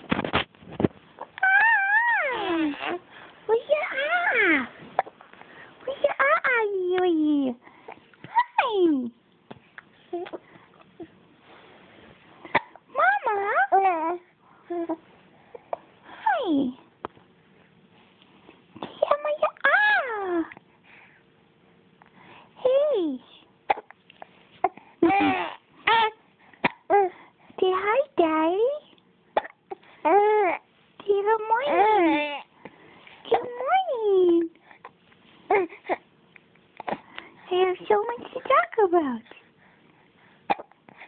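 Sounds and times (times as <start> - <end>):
baby cooing: 1.2 - 3.0, 24.6 - 27.1, 35.5 - 36.0
faint breath: 5.3 - 5.8, 20.7 - 21.4, 22.0 - 22.6, 32.5 - 33.3, 39.3 - 41.0.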